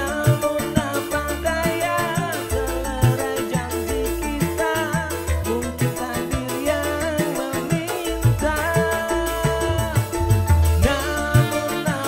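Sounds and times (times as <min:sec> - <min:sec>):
drum and bass beat: 0:00.0 - 0:12.0
live band playing keyboard-led tune: 0:00.0 - 0:12.0
man singing into a microphone: 0:00.0 - 0:12.0.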